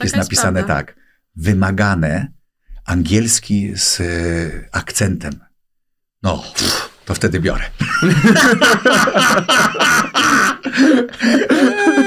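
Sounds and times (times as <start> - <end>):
man laughing behind hand: 7.8 - 12.0.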